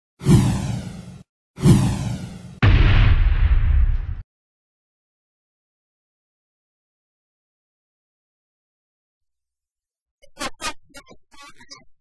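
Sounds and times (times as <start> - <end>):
whoosh sound effects: 0.2 - 4.2.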